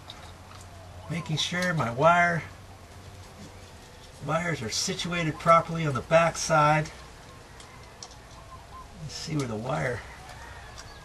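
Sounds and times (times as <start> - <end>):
low steady background: 0.0 - 11.0.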